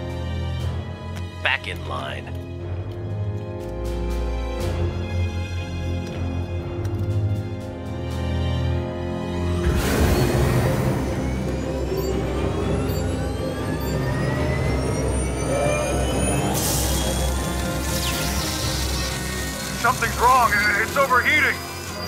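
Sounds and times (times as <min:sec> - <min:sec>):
tense dramatic music: 0:00.0 - 0:22.0
engine whine rising in pitch: 0:09.7 - 0:22.0.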